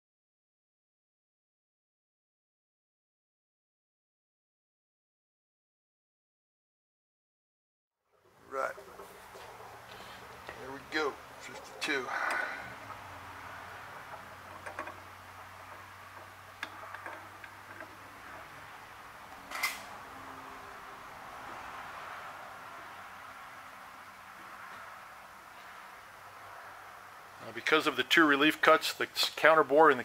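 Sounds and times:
faint shop hum: 8.2 - 30.0
threaded metal parts turning: 8.8 - 21.1.

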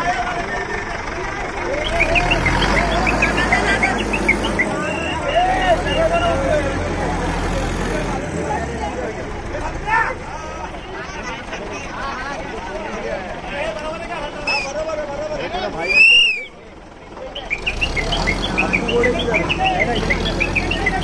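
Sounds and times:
crowd chatter and shouting: 0.0 - 21.0
heavy vehicle engine running: 0.0 - 21.0.

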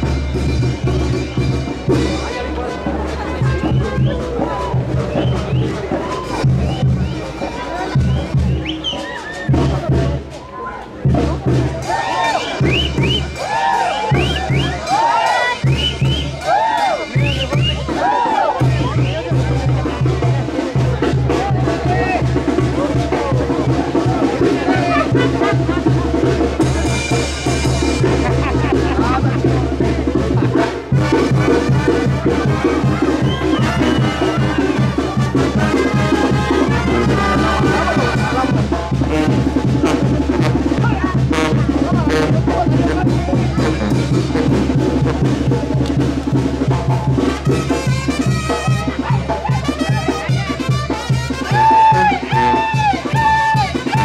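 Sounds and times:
brass band playing: 0.0 - 10.2, 11.0 - 54.0
crowd voices: 0.0 - 54.0.

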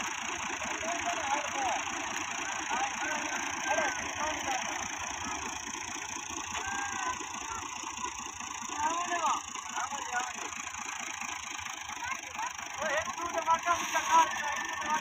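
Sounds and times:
tractor diesel engine running: 0.0 - 15.0
men calling out: 0.6 - 5.5, 6.4 - 7.8.

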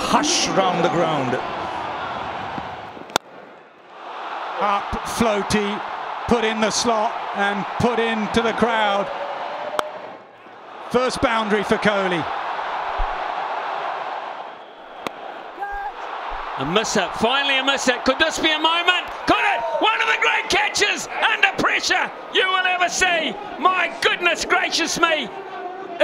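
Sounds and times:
stadium crowd noise: 0.0 - 26.0.

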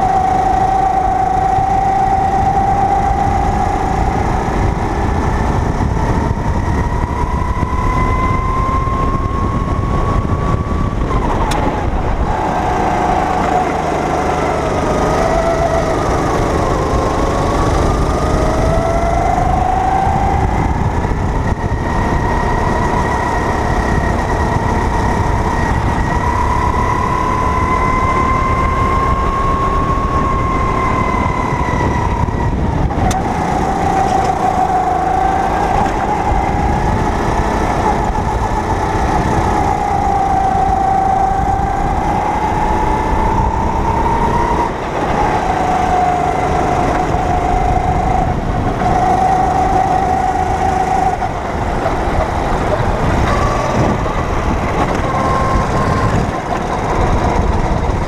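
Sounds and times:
go-kart engine revving: 0.0 - 58.0.

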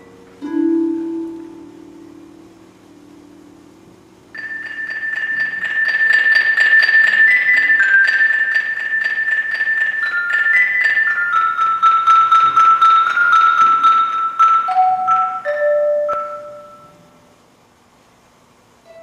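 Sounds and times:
mallet percussion tremolo: 0.0 - 3.7, 4.3 - 17.2.

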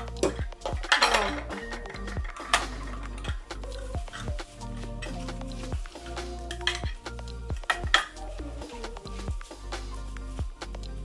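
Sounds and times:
glass jars clinking: 0.0 - 4.3
background music with steady beat: 0.0 - 11.0.

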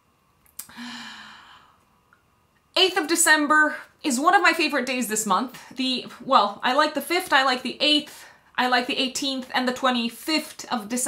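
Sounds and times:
woman sighing: 0.6 - 1.8.

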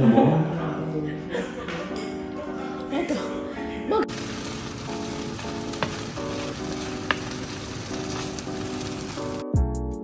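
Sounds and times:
soft background music: 0.0 - 10.0
chopsticks clicking against pan: 4.1 - 8.9
food sizzling in a frying pan: 4.1 - 9.5.

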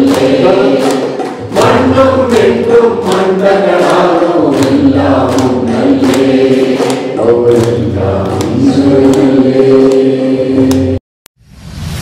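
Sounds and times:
group of people singing: 0.0 - 11.0
rhythmic clapping: 0.0 - 11.0.

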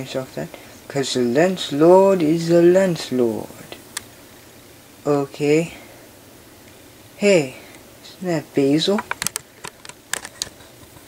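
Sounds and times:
sharp clicks: 9.0 - 10.6.

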